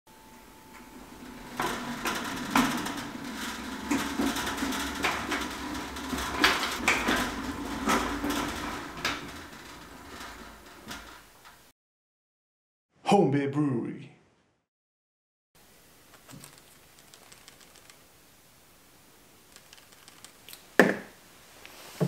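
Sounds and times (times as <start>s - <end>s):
metal clicks and knocks: 0.7s - 11.7s.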